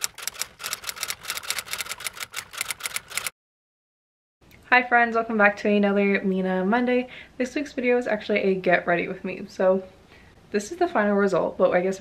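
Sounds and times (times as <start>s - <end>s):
typewriter-like key clicks: 0.0s - 3.3s.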